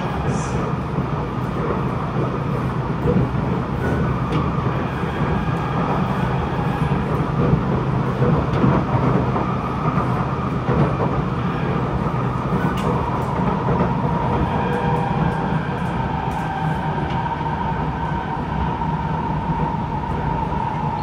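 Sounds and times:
steady train whine: 0.0 - 21.0
train wheels rumbling on rail: 0.0 - 21.0.

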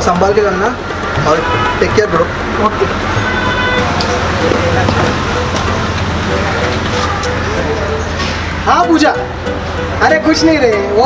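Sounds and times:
faint voices: 0.0 - 9.3
low vehicle rumble: 0.7 - 10.1.

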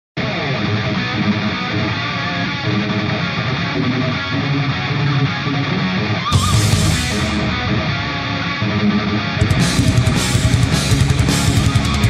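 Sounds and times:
hard rock guitar music: 0.2 - 12.0.

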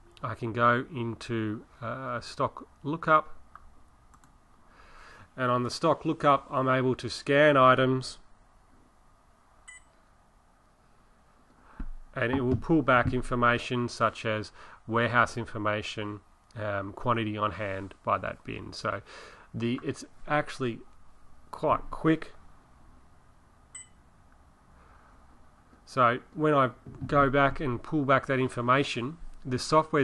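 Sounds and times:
barcode scanner beep: 9.7 - 9.9, 23.8 - 24.0.

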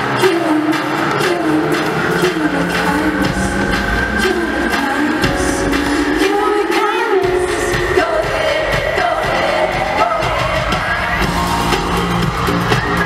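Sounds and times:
woman singing: 0.0 - 11.3
live pop song over pa: 0.0 - 13.0.

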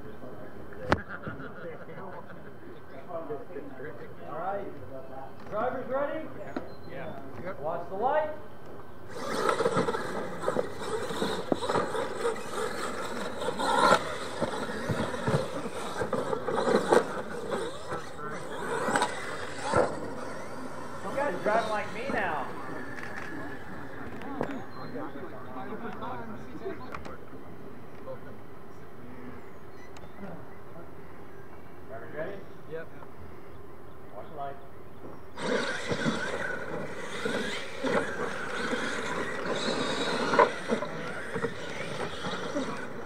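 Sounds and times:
people talking: 0.0 - 8.4, 9.6 - 31.0
toy truck motor whine: 9.1 - 25.1, 35.3 - 43.0.

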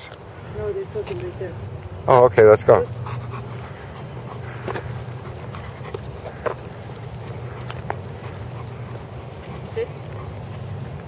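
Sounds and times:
low background noise: 0.0 - 11.0
footsteps on asphalt: 3.0 - 11.0.

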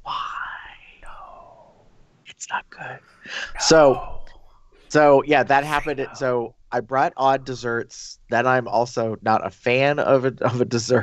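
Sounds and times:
person's breathy wordless voice: 0.0 - 1.6, 2.3 - 4.3, 5.0 - 11.0.

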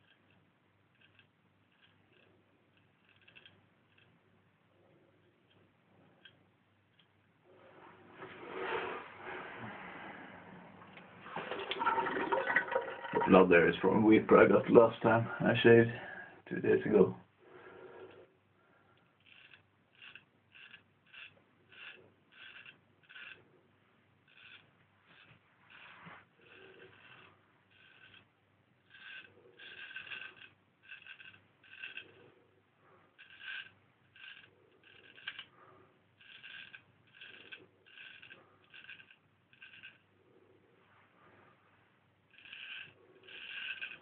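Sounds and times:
razor scraping stubble: 19.3 - 23.4, 42.3 - 44.0.

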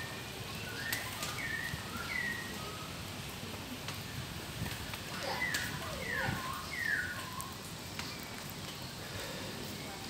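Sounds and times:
rain hissing: 0.0 - 10.0.

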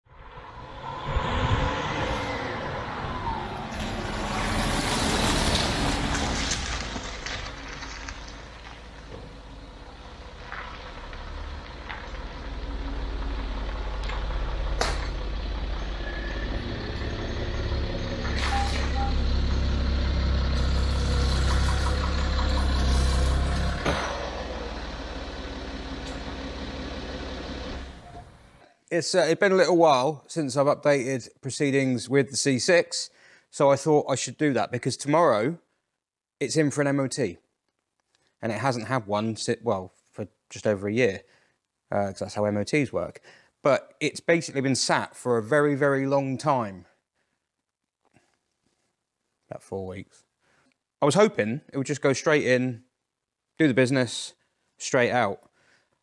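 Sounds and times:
car engine running: 3.8 - 28.6.

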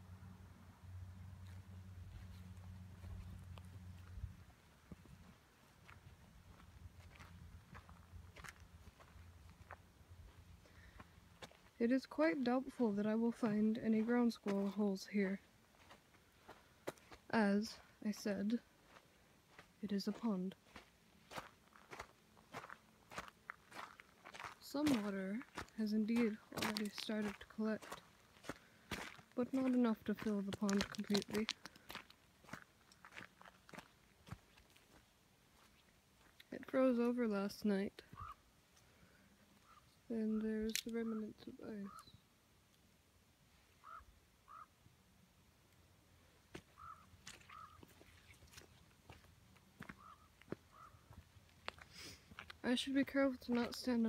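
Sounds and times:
faint footsteps on gravel: 1.4 - 42.2, 46.4 - 54.0
bird calls: 38.1 - 38.5, 39.6 - 42.3, 43.7 - 44.8, 46.6 - 48.7, 49.8 - 51.2.

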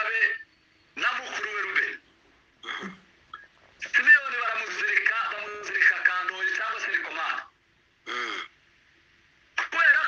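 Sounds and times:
person speaking: 3.7 - 7.6.

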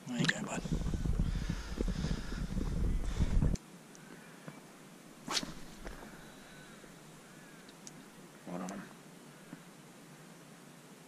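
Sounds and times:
low rumble: 0.4 - 3.6
fishing rod cast swish: 5.2 - 6.0.

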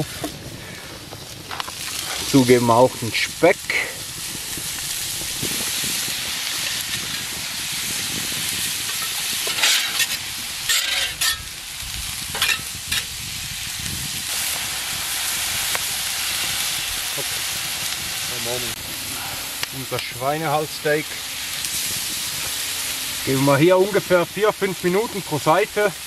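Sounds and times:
food sizzling on a hot plate: 0.0 - 26.0
metal spatula scraping a plate: 9.0 - 11.4.

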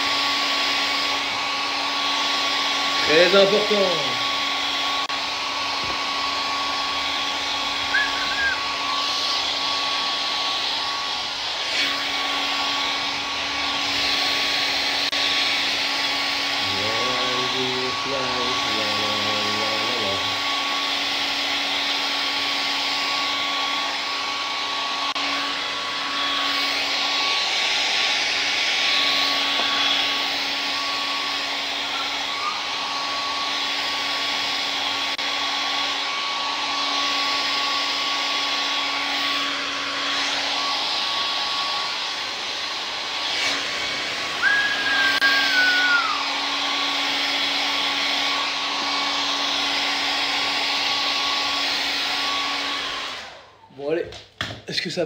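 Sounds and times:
hair dryer blowing: 0.0 - 55.0.

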